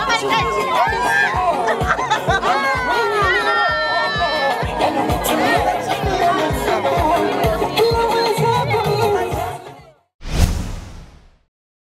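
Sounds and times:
whoosh with deep thud: 0:10.2 - 0:11.5.

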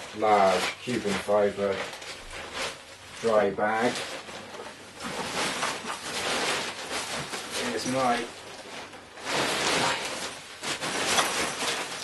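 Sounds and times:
dry bag rustling and scraping: 0:00.0 - 0:12.0.

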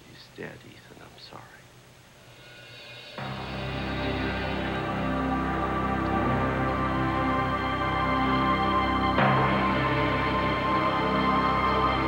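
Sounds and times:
man speaking quietly: 0:00.0 - 0:01.7
faint steady hum: 0:00.0 - 0:12.0.

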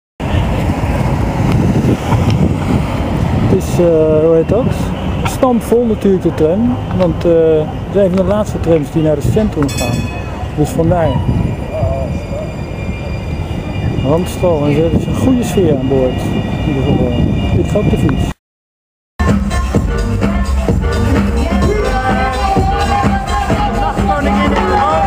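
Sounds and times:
tram rumbling: 0:00.2 - 0:17.9
faint passenger voices: 0:20.4 - 0:25.0.

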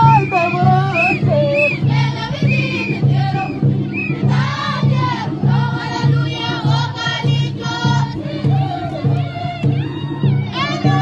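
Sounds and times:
choir singing: 0:00.0 - 0:09.8, 0:10.5 - 0:11.0
steady low beat: 0:00.0 - 0:11.0.

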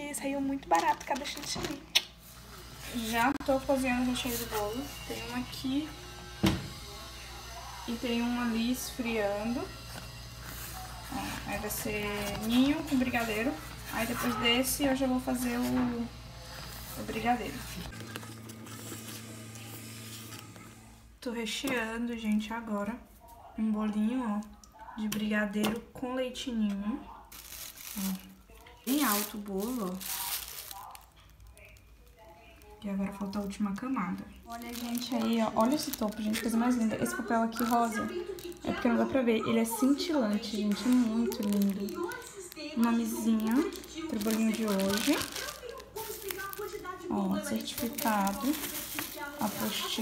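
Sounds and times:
plastic film crinkling: 0:00.0 - 0:05.8, 0:08.6 - 0:20.6, 0:27.2 - 0:50.0
faint handling sounds: 0:27.3 - 0:50.0.

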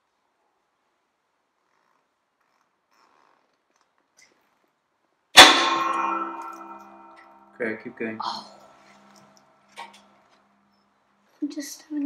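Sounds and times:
loud metal crack: 0:05.4 - 0:07.5
metallic ringing: 0:05.4 - 0:08.0.

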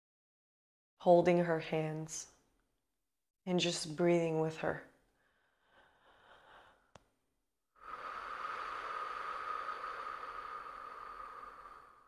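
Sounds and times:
woman breathing slowly: 0:05.1 - 0:07.1, 0:07.7 - 0:12.0.

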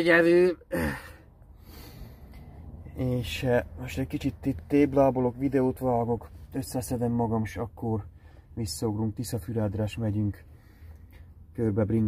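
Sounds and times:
faint breath: 0:00.9 - 0:02.7, 0:10.5 - 0:11.3.

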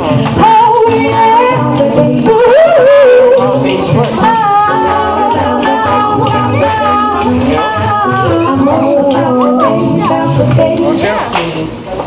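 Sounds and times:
a cappella backing vocals: 0:00.0 - 0:11.7
woman singing a long high note: 0:04.3 - 0:10.9.

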